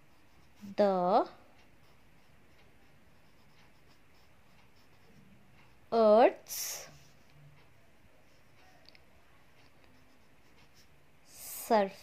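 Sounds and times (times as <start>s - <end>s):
pen scratching on paper: 0.0s - 5.8s, 9.6s - 10.9s.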